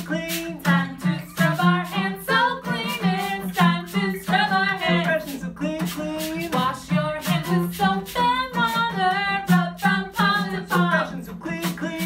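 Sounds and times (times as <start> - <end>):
strummed acoustic guitar: 0.0 - 12.0
women singing: 0.0 - 12.0.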